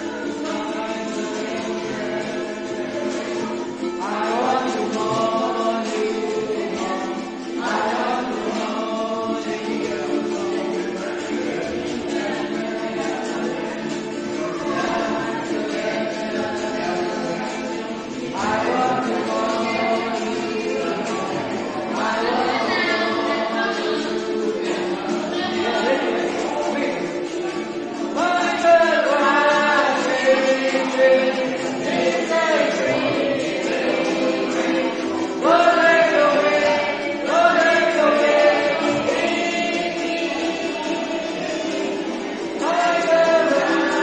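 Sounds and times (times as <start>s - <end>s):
group singing worship song: 0.0s - 44.0s
ukuleles strummed: 0.0s - 44.0s.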